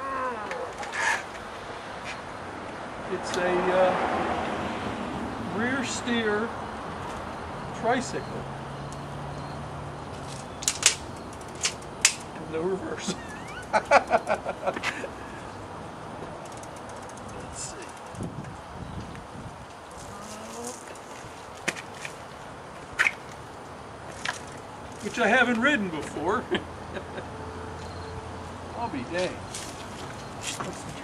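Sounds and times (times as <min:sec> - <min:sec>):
trike clicks: 0:10.2 - 0:12.3, 0:16.2 - 0:19.8.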